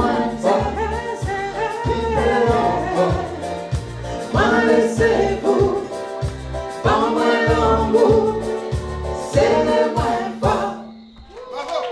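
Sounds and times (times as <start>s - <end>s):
live band with steady beat: 0.0s - 10.7s
singers in harmony: 0.0s - 11.3s.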